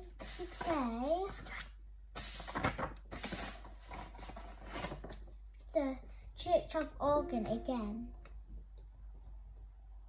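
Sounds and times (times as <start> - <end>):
child speaking: 0.4 - 1.4, 5.7 - 8.2
sheet music pages rustling: 2.2 - 5.2.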